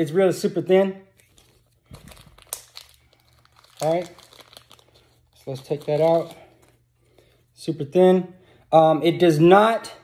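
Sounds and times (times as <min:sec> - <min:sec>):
plastic bag crinkling: 0:01.2 - 0:07.2.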